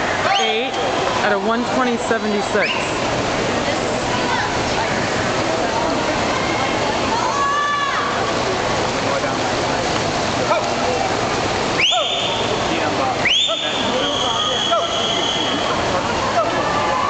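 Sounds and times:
spectators cheering and shouting: 4.0 - 8.6, 11.7 - 17.0
shrill whistles: 11.8 - 12.4, 13.2 - 15.7.

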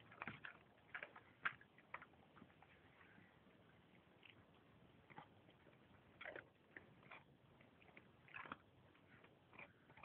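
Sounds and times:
dog gnawing on bone: 0.0 - 2.8, 4.0 - 10.0.

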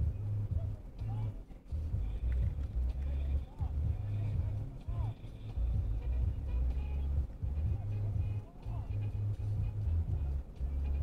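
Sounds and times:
faint muffled voices: 0.1 - 11.0.

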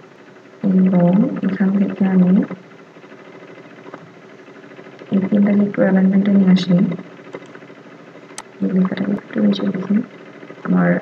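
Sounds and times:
narrator speaking: 0.6 - 2.6, 5.0 - 7.1, 8.4 - 11.0.

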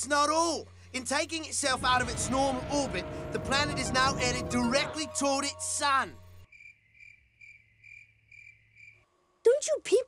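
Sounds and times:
cricket chirping: 0.7 - 9.4.

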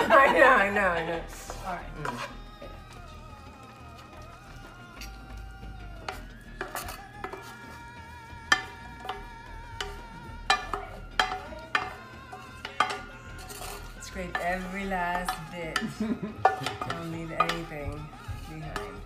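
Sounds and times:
soft background music: 0.0 - 19.0
wooden spoon scraping a skillet: 0.1 - 2.7, 6.0 - 19.0.

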